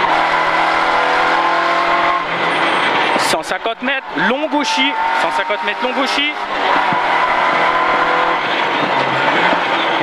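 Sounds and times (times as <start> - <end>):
car engine pulling hard: 0.0 - 10.0
road noise: 0.0 - 10.0.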